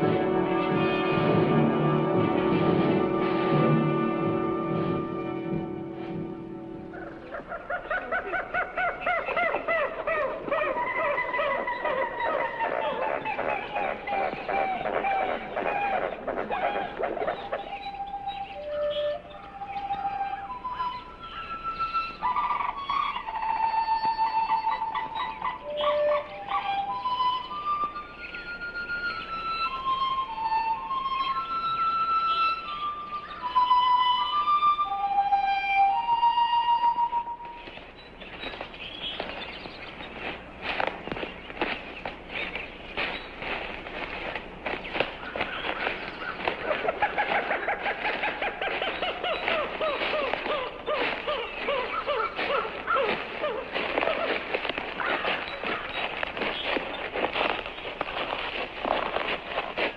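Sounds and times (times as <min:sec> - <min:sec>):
solo flute melody: 0:09.4 - 0:37.8.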